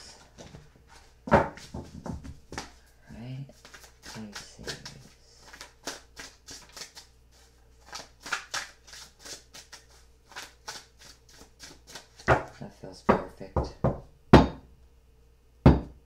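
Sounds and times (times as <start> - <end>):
cards being shuffled: 3.6 - 12.6.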